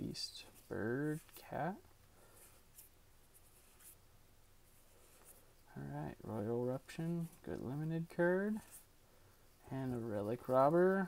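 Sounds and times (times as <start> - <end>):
cards brushing against each other: 0.2 - 11.0.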